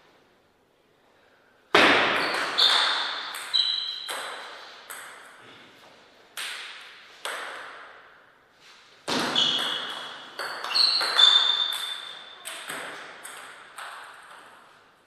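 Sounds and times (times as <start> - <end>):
table tennis ball strikes: 1.7 - 5.4, 6.4 - 8.0, 9.1 - 14.7.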